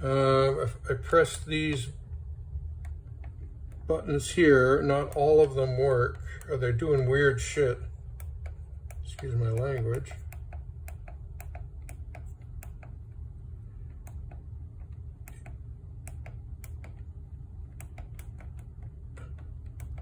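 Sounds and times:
steady low hum: 0:00.0 - 0:20.0
mixing console buttons clicking: 0:01.1 - 0:20.0.

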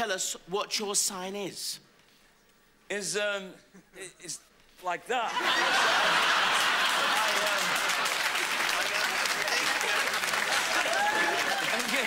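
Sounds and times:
audience laughing: 0:05.3 - 0:12.0
audience applauding: 0:05.5 - 0:12.0.

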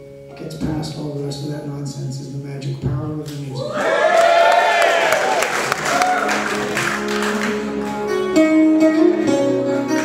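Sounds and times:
audience cheering and clapping: 0:03.6 - 0:08.1
guitars holding notes: 0:05.8 - 0:10.0.

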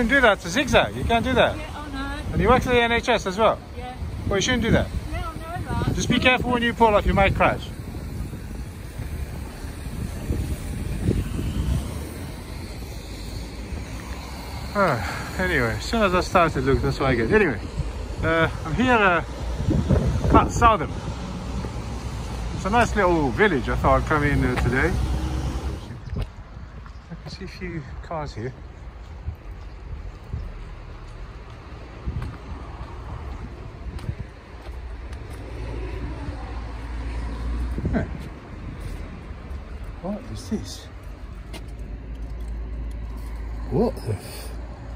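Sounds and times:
street traffic: 0:00.0 - 0:44.9
wind on microphone: 0:03.6 - 0:23.0, 0:28.8 - 0:40.0
car passing by: 0:19.6 - 0:26.0.

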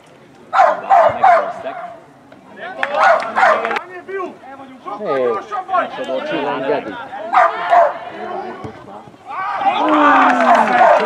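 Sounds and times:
spectators' voices: 0:00.0 - 0:11.0.

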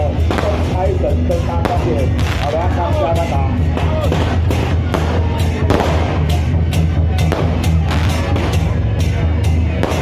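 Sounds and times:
procession music with low drum: 0:00.0 - 0:10.0.

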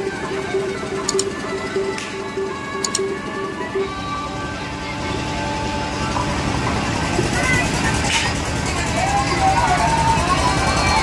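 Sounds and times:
ride machinery rumbling: 0:00.0 - 0:11.0
crowd voices: 0:03.8 - 0:11.0.

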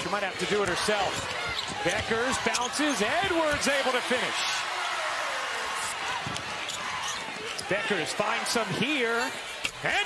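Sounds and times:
crowd voices: 0:00.0 - 0:10.0
basketball bouncing: 0:00.3 - 0:03.9.

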